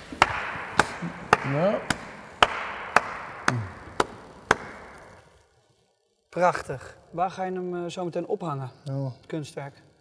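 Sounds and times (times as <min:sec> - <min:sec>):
hand claps echoing in hall: 0:00.0 - 0:05.3.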